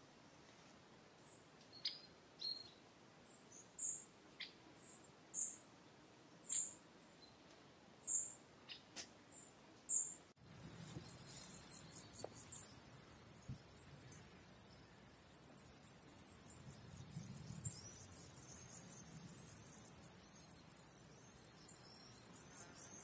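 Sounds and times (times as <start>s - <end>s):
songbird short high calls: 1.7s - 2.8s.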